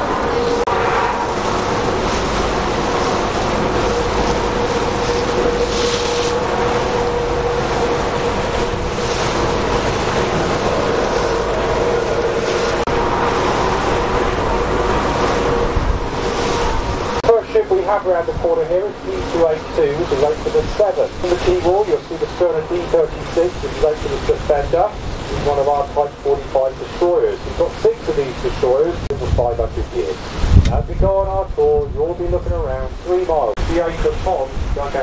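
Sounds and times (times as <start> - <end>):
wind on microphone: 0.0 - 17.3, 28.5 - 35.0
boat engine humming: 0.0 - 35.0
choppy water washing: 0.0 - 35.0
man speaking: 17.2 - 35.0.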